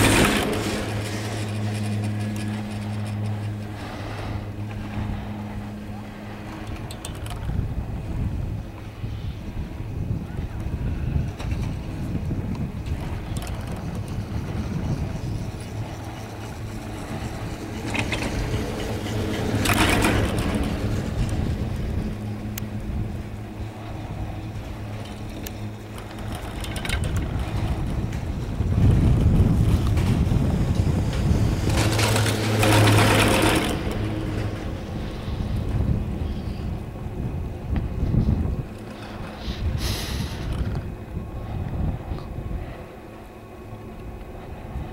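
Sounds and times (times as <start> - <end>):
low hum of running chairlift: 0.0 - 44.9
wind on microphone: 0.0 - 44.9.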